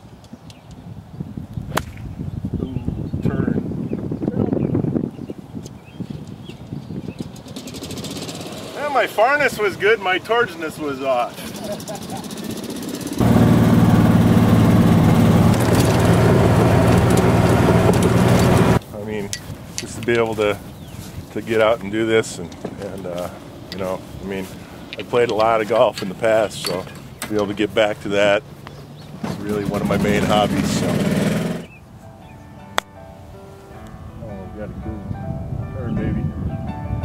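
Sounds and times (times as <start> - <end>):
golf club striking ball: 1.6 - 2.1
engine running steadily: 11.4 - 18.8, 28.6 - 31.7.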